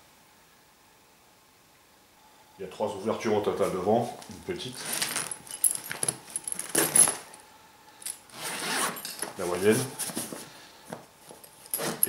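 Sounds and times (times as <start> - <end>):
zipper pulls clicking and jingling: 4.8 - 7.3, 8.0 - 9.4, 11.4 - 12.0.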